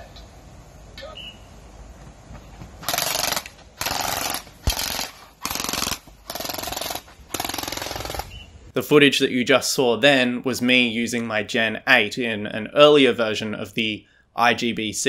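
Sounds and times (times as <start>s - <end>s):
gel blaster automatic bursts: 2.8s - 8.4s.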